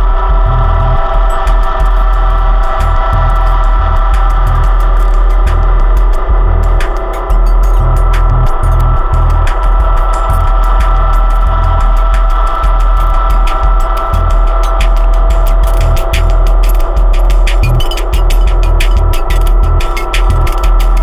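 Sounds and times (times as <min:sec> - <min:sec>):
heavy bass pulses: 0:00.0 - 0:21.0
sustained synthesizer drone: 0:00.0 - 0:21.0
rapid clicky ticks: 0:00.5 - 0:21.0.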